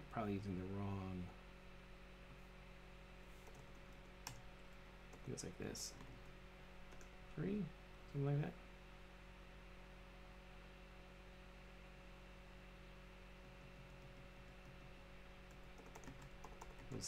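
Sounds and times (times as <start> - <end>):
faint steady hum: 0.0 - 17.0
computer keyboard typing: 3.4 - 4.4, 15.4 - 17.0.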